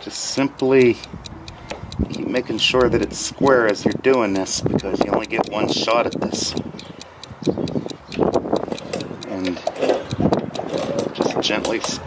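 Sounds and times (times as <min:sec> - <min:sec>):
gutter punch clicking: 0:00.4 - 0:12.0.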